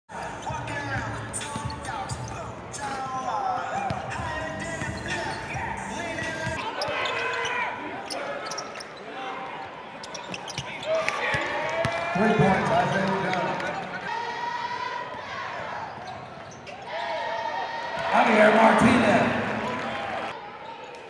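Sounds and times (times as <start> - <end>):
mix of voices: 0.1 - 6.8.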